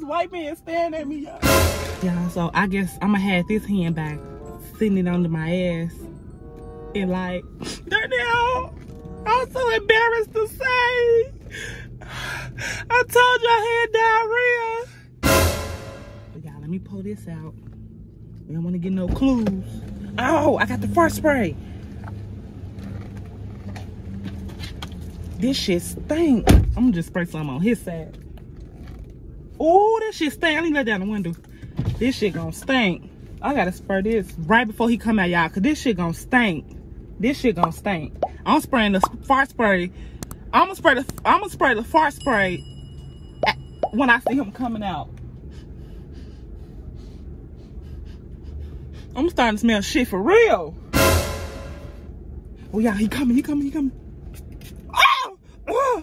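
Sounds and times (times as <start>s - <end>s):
low hum in car cabin: 0.0s - 56.0s.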